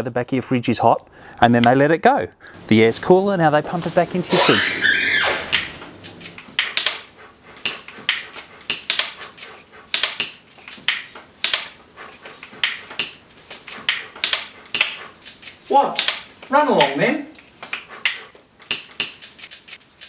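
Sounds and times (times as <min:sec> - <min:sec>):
hand bicycle pumps hissing: 0:03.8 - 0:20.0.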